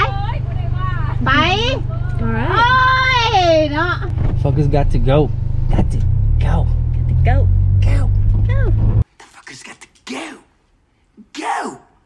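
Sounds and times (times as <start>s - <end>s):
car engine hum inside cabin: 0.0s - 9.0s.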